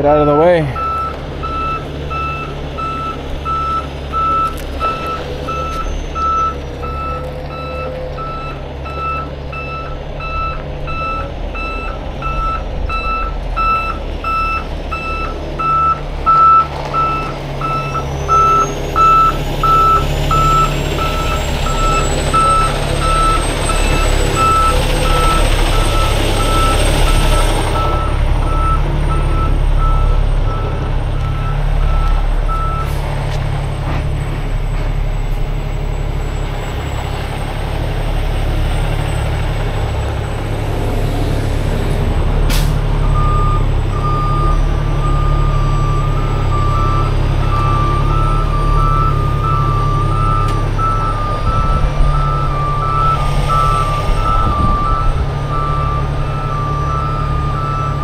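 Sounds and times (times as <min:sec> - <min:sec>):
diesel engine running: 0:00.0 - 0:58.0
truck reversing alarm beeping: 0:00.0 - 0:58.0.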